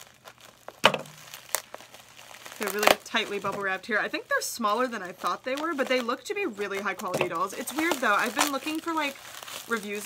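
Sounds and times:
bubble wrap crackles: 0:00.0 - 0:10.0
bubble wrap crinkling: 0:00.0 - 0:10.0.

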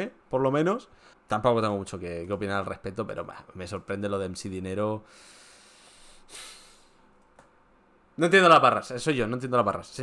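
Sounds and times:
low steady hiss: 0:00.0 - 0:10.0
man breathing out through nose: 0:05.1 - 0:07.0.

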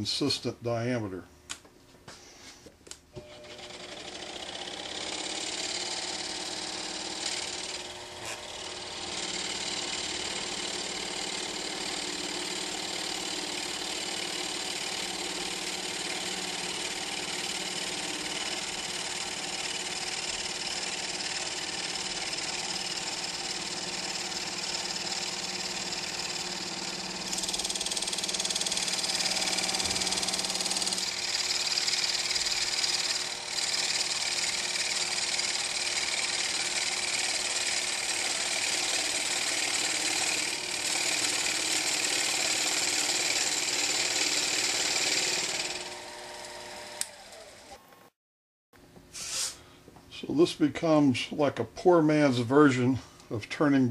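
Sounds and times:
lathe motor hum: 0:03.2 - 0:47.8
lathe tool cutting hiss: 0:04.8 - 0:47.3, 0:49.1 - 0:49.6.

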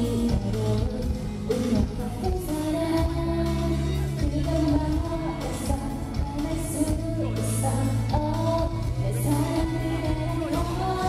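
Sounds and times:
woman singing pop ballad: 0:00.0 - 0:11.0.

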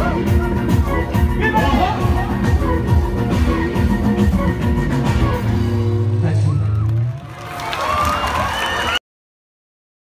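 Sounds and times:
live band held low chord: 0:00.0 - 0:06.5
crowd noise: 0:00.0 - 0:09.0.

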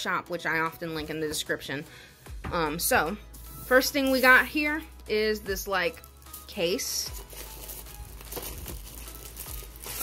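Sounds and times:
plastic film crinkling: 0:05.7 - 0:10.0.

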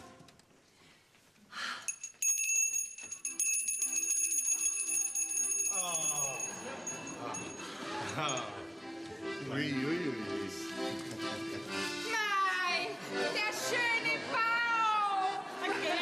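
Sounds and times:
small hand bell ringing rapidly: 0:01.9 - 0:08.5
quiet music: 0:03.4 - 0:16.0.

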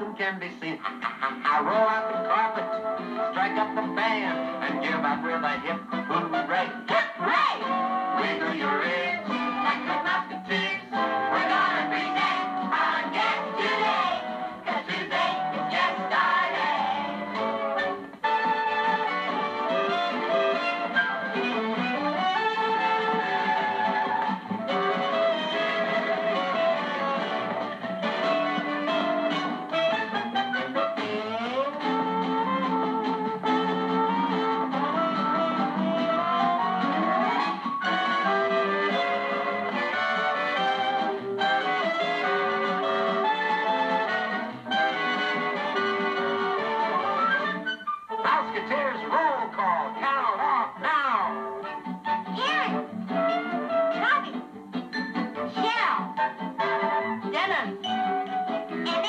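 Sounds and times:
lively instrumental show-tune music: 0:00.0 - 0:59.0.

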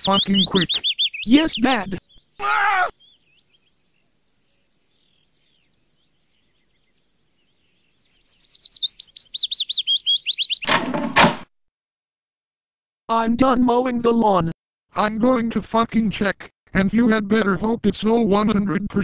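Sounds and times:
songbird chirping: 0:00.0 - 0:10.7.

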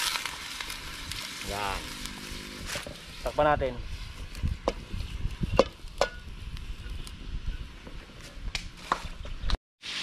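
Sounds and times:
meat sizzling in a wok: 0:00.0 - 0:06.3.

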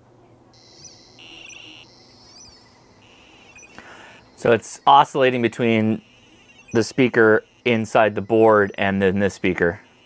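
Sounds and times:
lower electronic tone: 0:00.5 - 0:10.0
high-pitched electronic warbling tone: 0:00.6 - 0:10.0.

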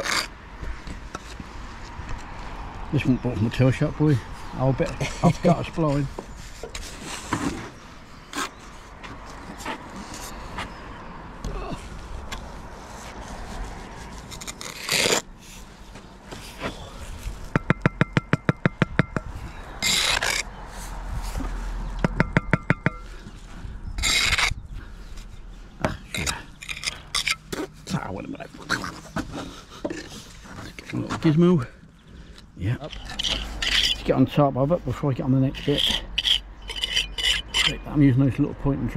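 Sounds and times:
trowel scraping wet mortar: 0:00.0 - 0:00.3, 0:13.3 - 0:15.3, 0:19.8 - 0:20.5, 0:24.0 - 0:24.6, 0:25.9 - 0:28.0, 0:32.8 - 0:34.2, 0:35.6 - 0:37.9.

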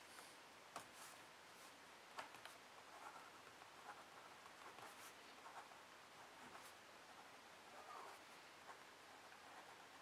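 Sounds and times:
pen scratching on paper: 0:02.8 - 0:10.0.

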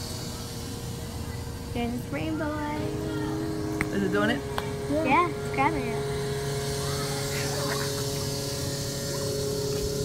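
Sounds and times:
vending machine mechanism hum: 0:00.0 - 0:10.0.

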